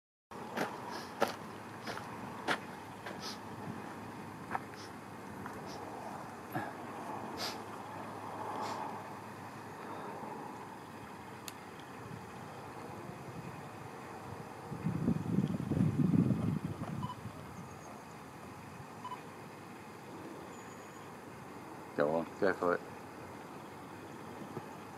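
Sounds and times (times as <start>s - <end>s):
outdoor background noise: 0.3s - 24.9s.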